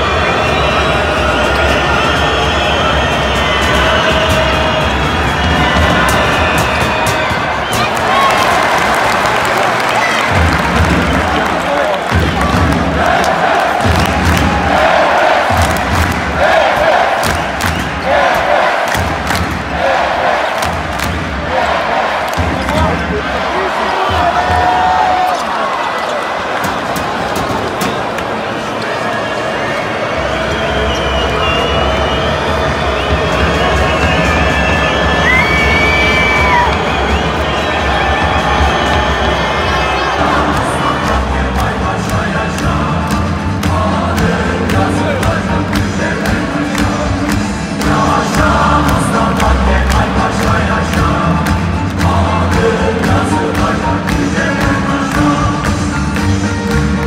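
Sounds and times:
arena crowd noise: 0:00.0 - 0:57.0
music with rhythmic beat: 0:10.3 - 0:23.2, 0:31.9 - 0:57.0.

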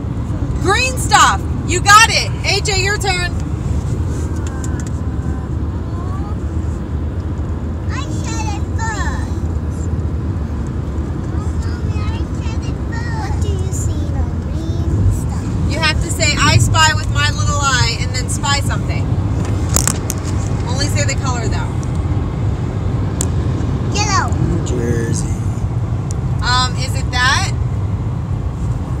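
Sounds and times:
car road and engine rumble: 0:00.0 - 0:29.0.

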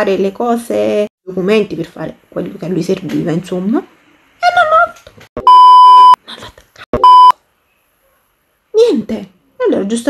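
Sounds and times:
censor bleep: 0:05.4 - 0:06.2, 0:07.0 - 0:07.4.

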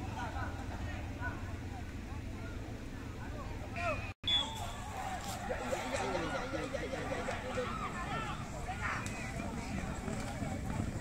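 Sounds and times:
people's voices: 0:00.0 - 0:11.0
horses galloping on sand: 0:04.5 - 0:11.0.

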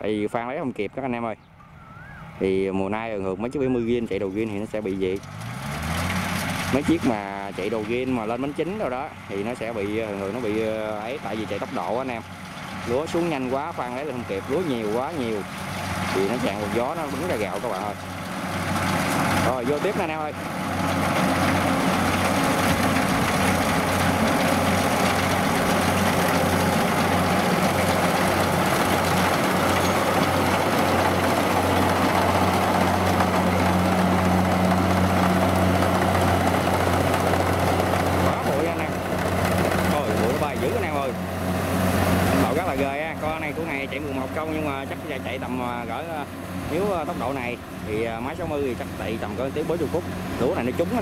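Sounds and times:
combine harvester engine and threshing: 0:00.0 - 0:51.0.

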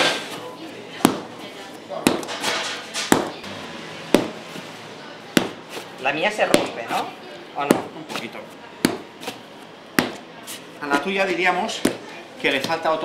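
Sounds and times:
dough slapped on wooden table: 0:05.3 - 0:05.6, 0:08.8 - 0:09.4, 0:10.0 - 0:10.2.

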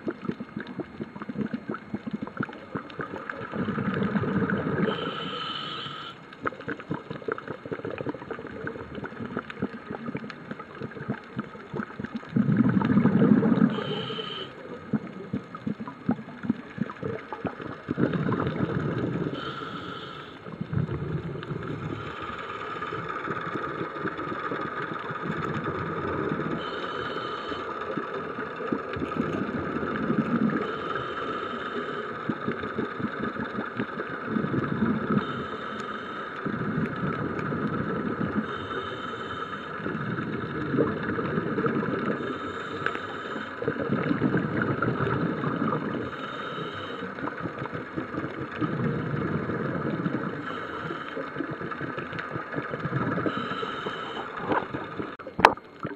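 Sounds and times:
underwater rushing wash: 0:00.0 - 0:55.9
high hiss: 0:04.9 - 0:06.2.

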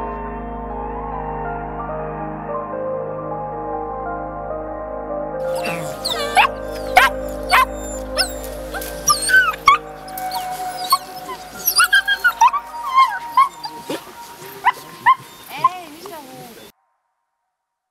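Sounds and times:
puppies whining and yipping: 0:05.4 - 0:16.7.

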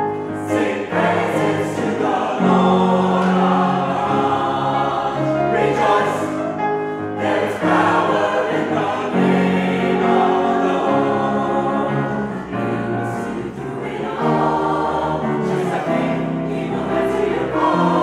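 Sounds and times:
mixed choir singing gospel: 0:00.0 - 0:18.0.

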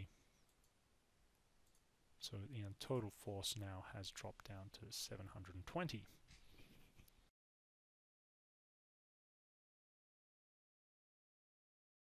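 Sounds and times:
computer mouse click: 0:00.4 - 0:00.8, 0:01.6 - 0:01.9.

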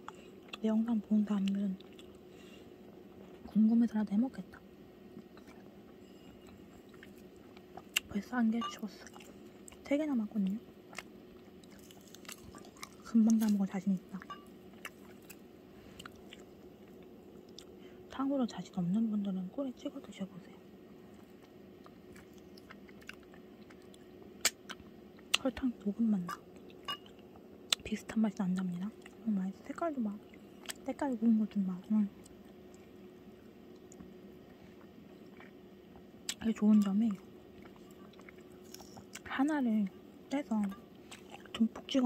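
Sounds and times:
low steady hum: 0:00.0 - 0:42.0
chewing fruit: 0:01.3 - 0:02.2, 0:06.4 - 0:17.8, 0:21.1 - 0:25.5, 0:34.7 - 0:39.3, 0:40.4 - 0:41.7.

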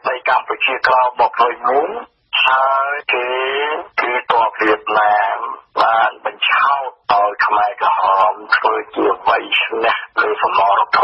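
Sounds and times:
news reader talking on radio: 0:00.0 - 0:11.0.

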